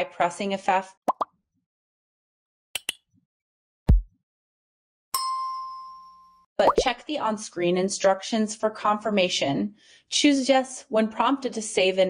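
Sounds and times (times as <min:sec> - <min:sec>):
sound-effect pops: 0:01.1 - 0:01.3, 0:03.9 - 0:04.1, 0:06.6 - 0:07.0.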